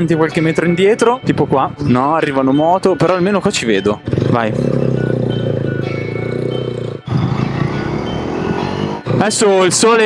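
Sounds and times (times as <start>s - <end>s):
motorcycle engine pulling away: 4.0s - 9.8s.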